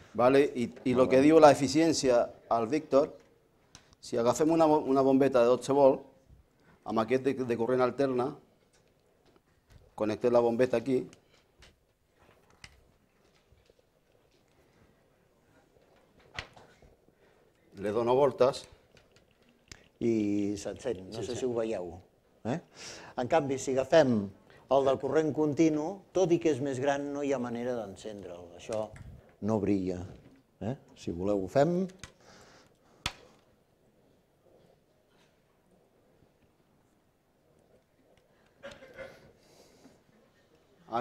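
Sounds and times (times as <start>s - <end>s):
faint wire handling clicks: 31.8s - 33.5s.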